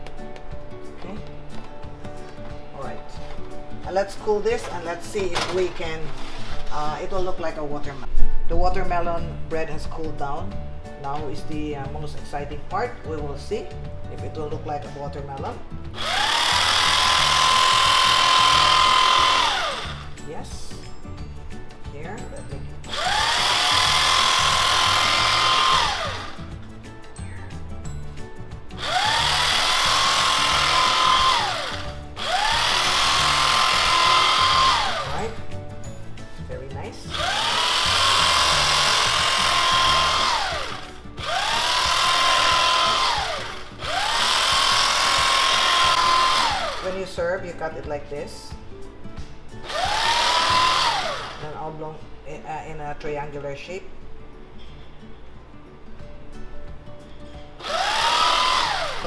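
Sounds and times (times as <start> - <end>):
electric carving knife whine: 16.0 - 20.2, 22.9 - 26.5, 28.8 - 35.4, 37.1 - 46.9, 49.7 - 51.4, 57.6 - 59.0.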